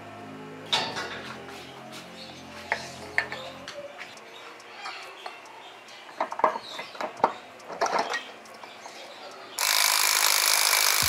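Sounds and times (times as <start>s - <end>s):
background music: 0.0s - 4.2s.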